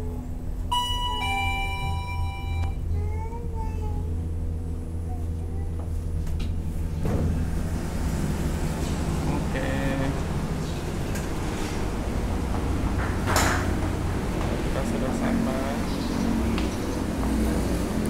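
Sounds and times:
low steady hum: 0:00.0 - 0:18.0
two-note lift chime: 0:00.7 - 0:02.9.

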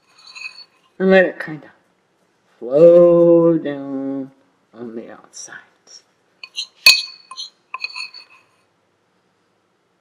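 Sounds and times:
metal spoon clinking on bowl: 0:00.0 - 0:00.8, 0:06.4 - 0:08.5.

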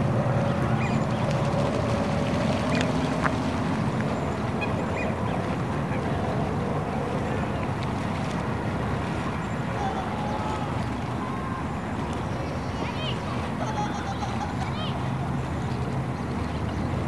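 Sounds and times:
low outdoor rumble: 0:00.0 - 0:17.0
faint distant voices: 0:04.6 - 0:17.0.

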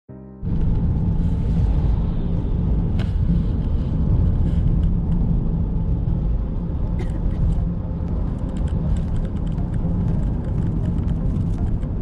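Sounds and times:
road rumble inside car: 0:00.4 - 0:12.0.

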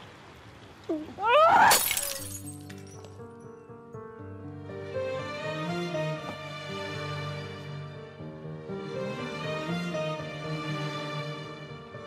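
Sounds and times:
person crying out: 0:00.9 - 0:02.0
music score with held notes: 0:03.2 - 0:12.0.

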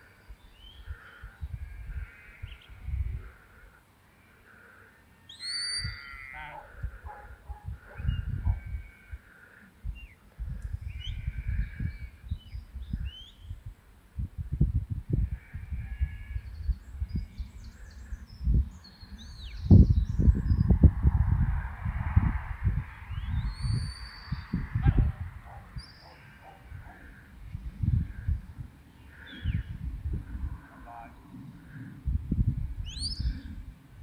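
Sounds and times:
wind buffeting microphone: 0:00.0 - 0:03.4, 0:05.8 - 0:34.0
birds calling: 0:00.0 - 0:10.2, 0:10.8 - 0:13.5, 0:25.4 - 0:27.4, 0:28.3 - 0:29.8, 0:32.8 - 0:33.5
rising bird call: 0:05.2 - 0:06.6, 0:32.8 - 0:33.4.

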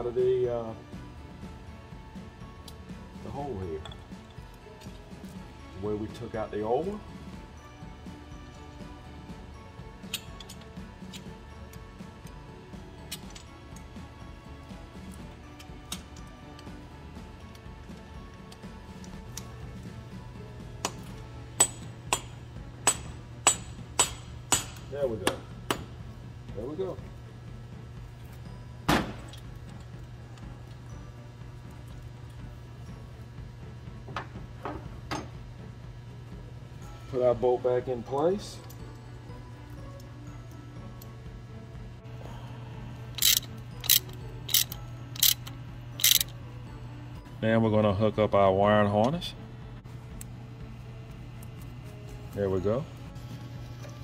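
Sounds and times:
faint background music: 0:00.0 - 0:54.0
metal tools clinking on engine: 0:43.2 - 0:46.3.

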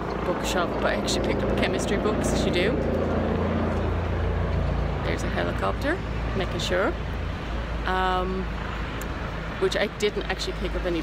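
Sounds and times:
helicopter flying overhead: 0:00.0 - 0:07.1.

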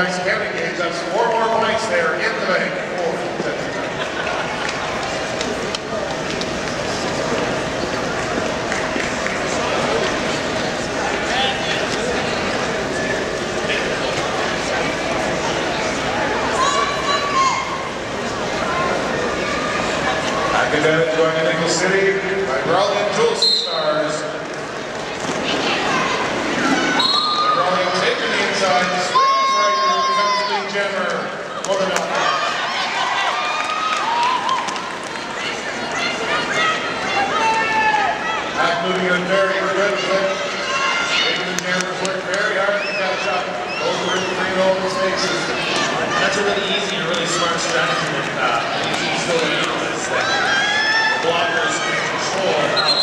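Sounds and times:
hubbub of many voices: 0:00.0 - 0:53.0
voices calling out: 0:39.4 - 0:53.0.

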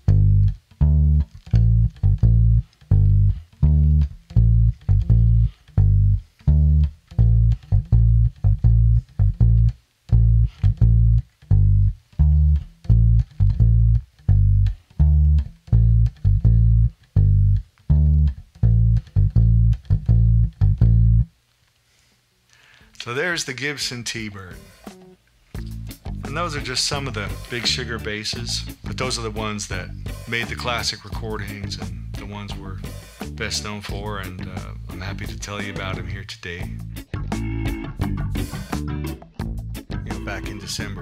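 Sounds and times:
plucked electric bass line: 0:00.0 - 0:21.3, 0:25.6 - 0:41.0.

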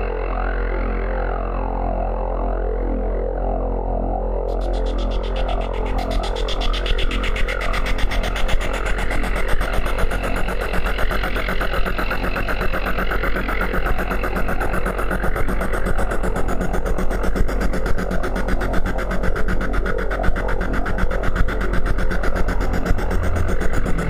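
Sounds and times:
deep drone: 0:00.0 - 0:24.0
fast pulsing electronic texture: 0:04.5 - 0:24.0.

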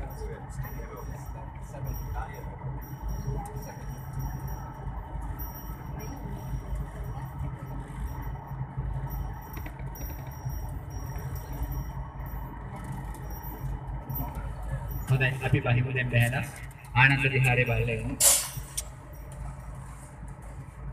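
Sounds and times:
vehicle engine and road rumble: 0:00.0 - 0:20.9.

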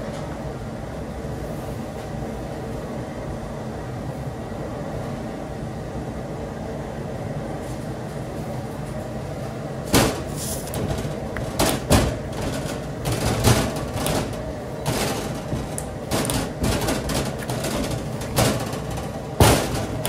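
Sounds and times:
steady hum: 0:00.0 - 0:20.0
candy mass thumping on metal bench: 0:09.9 - 0:20.0.

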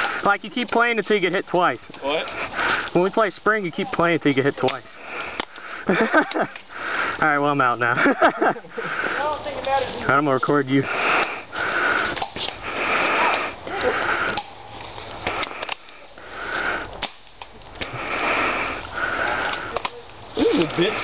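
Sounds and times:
heavy breathing: 0:00.0 - 0:00.3, 0:02.0 - 0:03.1, 0:04.8 - 0:07.3, 0:07.9 - 0:09.7, 0:10.7 - 0:17.0, 0:17.6 - 0:21.0
footsteps crunching through dry leaves: 0:08.9 - 0:15.3.

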